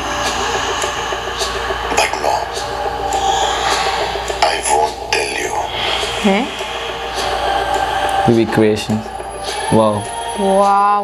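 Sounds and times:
hiss-like soundtrack drone: 0.0s - 11.0s.

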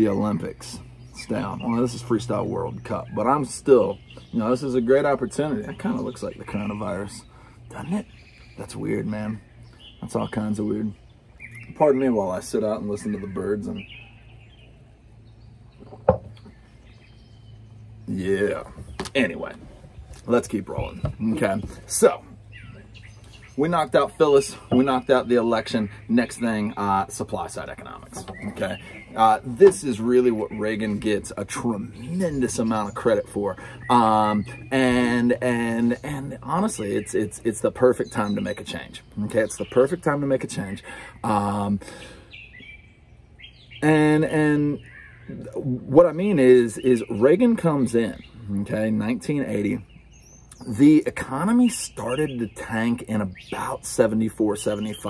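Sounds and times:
faint bird chirps: 0.0s - 55.0s
faint outdoor background noise: 0.0s - 55.0s
low background hum: 0.0s - 55.0s.

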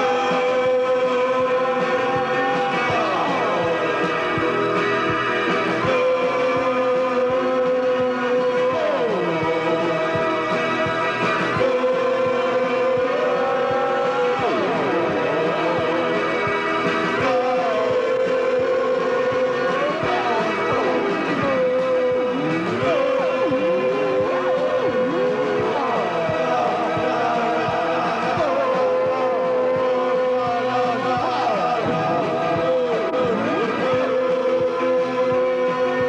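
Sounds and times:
steady drum beat: 0.0s - 36.0s.

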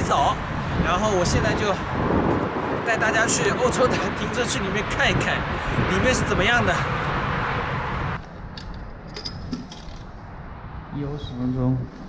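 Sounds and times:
steady outdoor noise: 0.0s - 12.0s.

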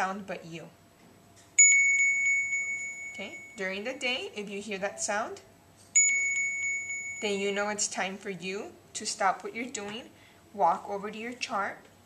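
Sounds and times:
bell-like phone alarm ringing: 1.6s - 3.6s, 6.0s - 7.4s.

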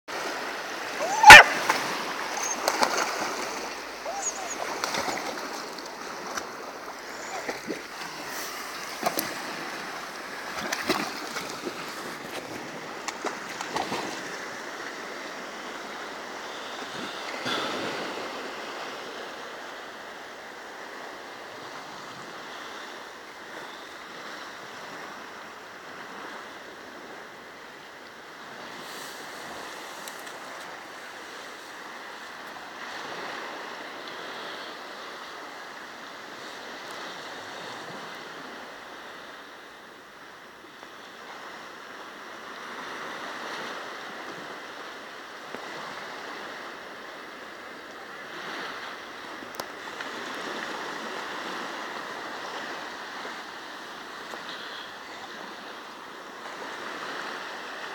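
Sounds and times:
small waves washing on shore: 0.1s - 57.9s
water washing around swimming dog: 0.4s - 14.4s.

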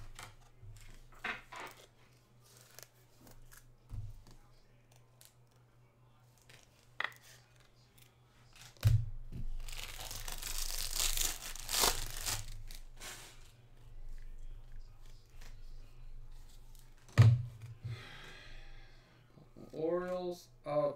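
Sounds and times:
foil wrapper crinkling and tearing: 9.5s - 13.4s.

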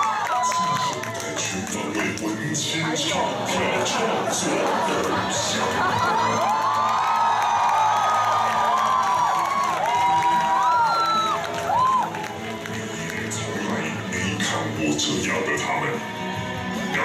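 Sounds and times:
audience cheering and screaming: 0.0s - 1.7s, 3.3s - 13.2s
low background music drone: 0.0s - 17.0s.

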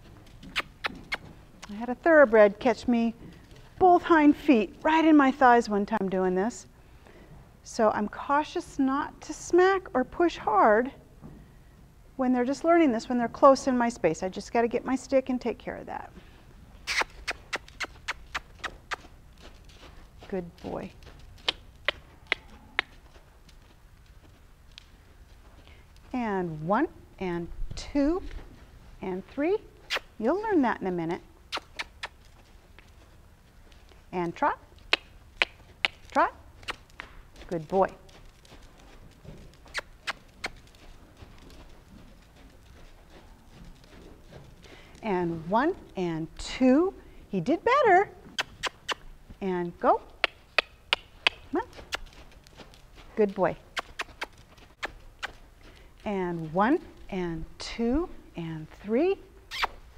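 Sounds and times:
horse hooves on dirt: 0.0s - 59.9s
hoofbeats on sand: 16.1s - 26.7s, 31.5s - 47.3s, 50.0s - 58.9s
sharp clicks: 16.9s - 19.1s, 21.4s - 23.0s, 31.5s - 32.9s, 34.8s - 37.2s, 50.2s - 52.6s.

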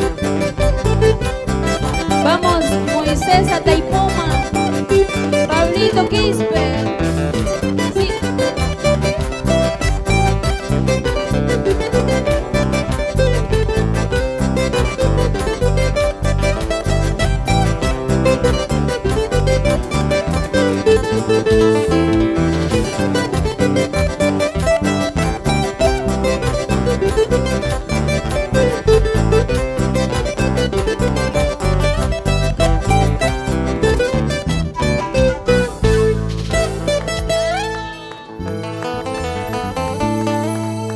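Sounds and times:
electric bass: 0.0s - 40.9s
guitar picking quick melody: 0.0s - 40.9s
keyboard: 0.0s - 40.9s
steady dance beat: 0.4s - 18.2s.

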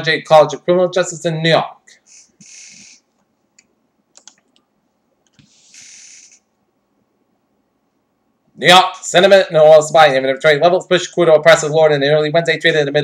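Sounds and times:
faint clicks: 3.2s - 5.5s.

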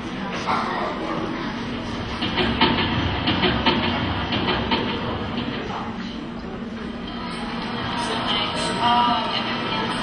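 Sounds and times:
film projector rattling: 2.2s - 5.7s.

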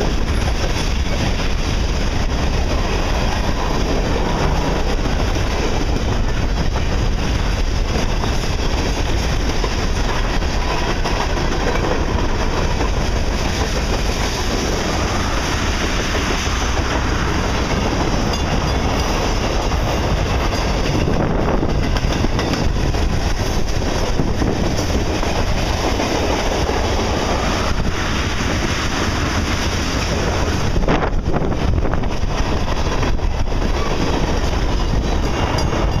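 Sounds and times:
train wheels running on rails: 0.0s - 36.0s.

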